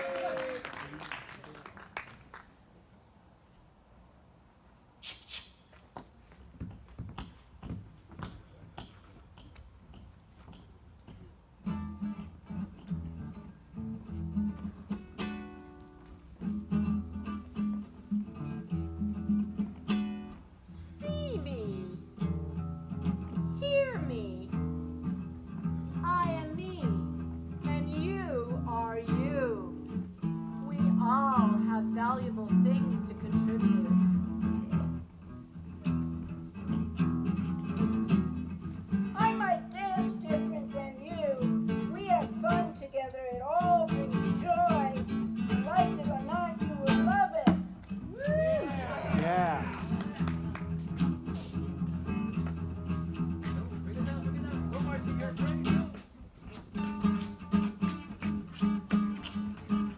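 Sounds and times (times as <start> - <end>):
acoustic guitar strumming: 11.6 - 48.1, 48.9 - 59.9.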